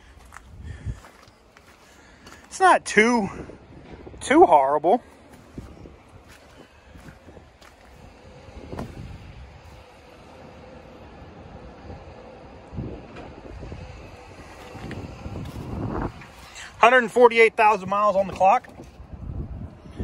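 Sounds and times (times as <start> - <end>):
wind rumbling on microphone: 0.0 - 2.5, 3.1 - 20.0
footsteps in wet mud: 0.0 - 2.6, 5.0 - 9.9, 14.4 - 16.8.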